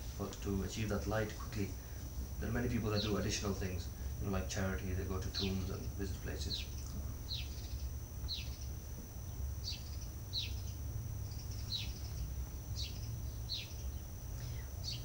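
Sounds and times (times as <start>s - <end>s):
steady low hum: 0.0s - 15.0s
bird chirping: 5.3s - 15.0s.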